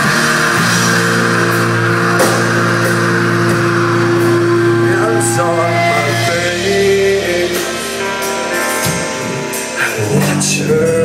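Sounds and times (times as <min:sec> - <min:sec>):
bass guitar: 0:00.0 - 0:11.0
drum kit: 0:00.0 - 0:11.0
electric guitar: 0:00.0 - 0:11.0
cymbal hit: 0:02.0 - 0:09.7.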